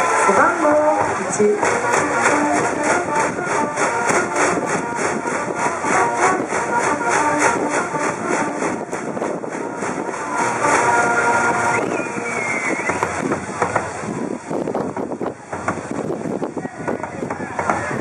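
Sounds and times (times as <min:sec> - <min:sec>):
brass band playing: 0:00.0 - 0:14.2
crowd cheering: 0:00.0 - 0:18.0.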